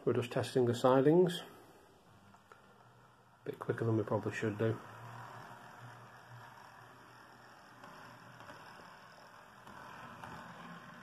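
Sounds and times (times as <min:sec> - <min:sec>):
model train motor humming: 0:01.4 - 0:11.0.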